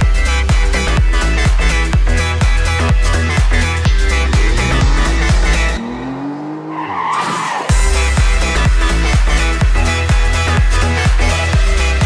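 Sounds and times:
electronic dance track: 0.0s - 5.8s, 7.4s - 12.0s
tone sliding upward: 3.8s - 7.8s.

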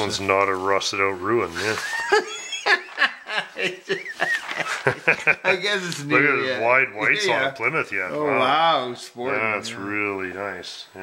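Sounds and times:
people chuckling: 1.6s - 6.1s.

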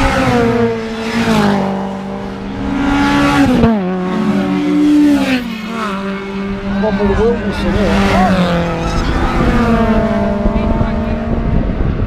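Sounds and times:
race car engines passing: 0.0s - 12.0s
wind rumble on microphone: 7.0s - 12.0s.

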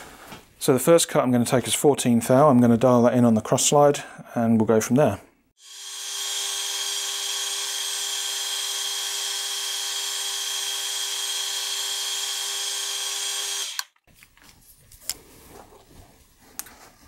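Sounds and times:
metal lathe cutting steel: 5.6s - 13.8s.

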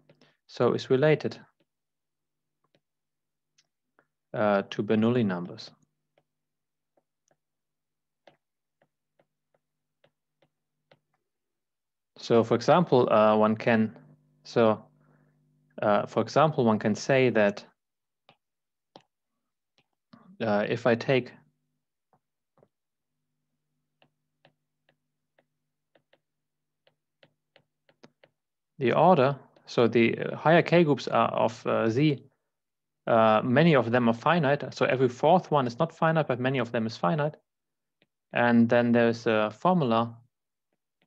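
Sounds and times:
stylus tapping glass screen: 5.8s - 11.4s, 23.8s - 28.4s
faint low hum: 8.0s - 26.2s
stylus tapping on glass screen: 23.9s - 28.4s.

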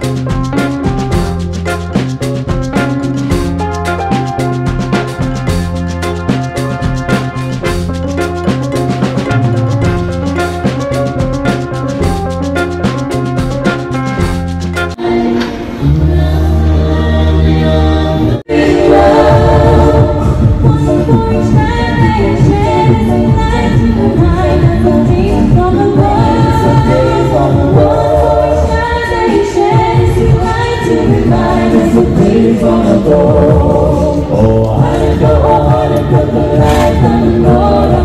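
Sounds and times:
a cappella group singing in harmony: 15.0s - 38.0s.

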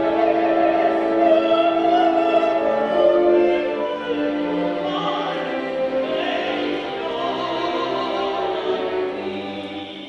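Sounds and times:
operatic soprano singing: 0.0s - 10.0s.

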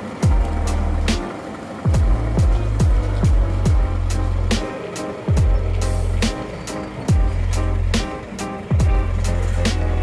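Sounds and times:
electronic beat music: 0.0s - 10.0s.

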